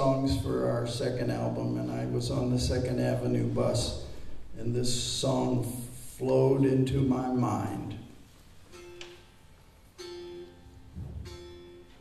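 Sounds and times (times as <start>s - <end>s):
plucked string notes: 8.6s - 12.0s.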